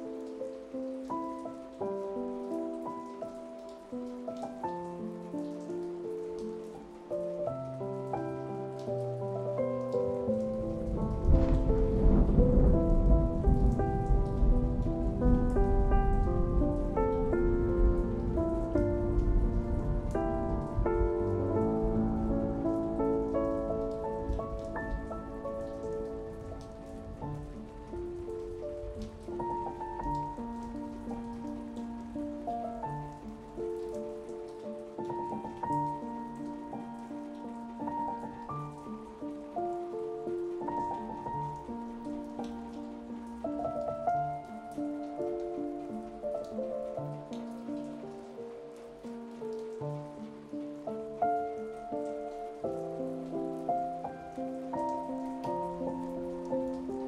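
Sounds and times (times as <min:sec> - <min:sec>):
slow soft piano music: 0:00.0 - 0:57.0
steady rain: 0:00.0 - 0:57.0
rumble of thunder: 0:10.2 - 0:32.1.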